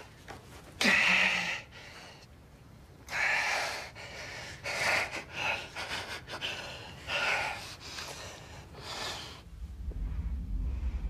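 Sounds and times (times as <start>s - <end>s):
low rumble: 8.5s - 11.0s.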